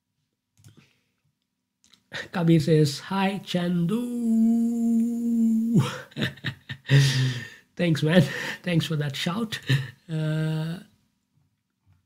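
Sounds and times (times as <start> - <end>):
man holding long vowel: 3.5 - 6.1, 10.1 - 10.8
man laughing: 4.0 - 8.6, 9.5 - 10.7.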